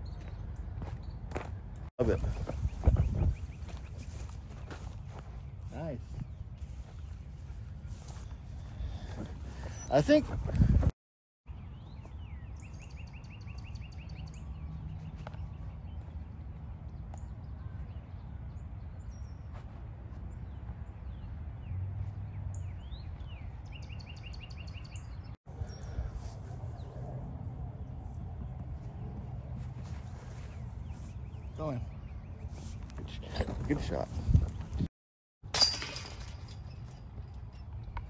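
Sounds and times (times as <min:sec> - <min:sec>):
songbirds calling: 0:00.0 - 0:10.3, 0:11.5 - 0:27.0, 0:27.8 - 0:34.8
outdoor background noise: 0:00.0 - 0:10.9, 0:11.5 - 0:38.0.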